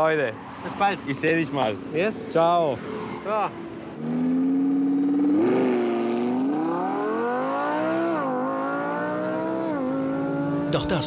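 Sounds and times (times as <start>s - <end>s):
car engine accelerating through gears: 3.9s - 11.0s.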